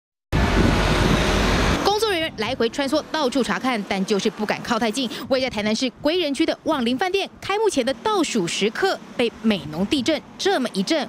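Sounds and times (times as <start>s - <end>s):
person speaking: 1.8s - 11.0s.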